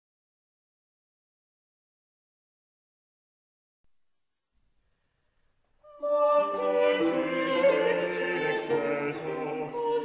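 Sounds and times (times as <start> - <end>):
sung vocal fugue: 5.8 - 10.0.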